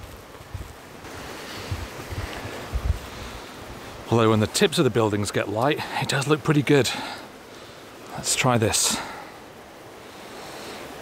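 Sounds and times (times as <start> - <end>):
wind buffeting microphone: 0.0 - 5.3
river water rushing: 0.0 - 11.0.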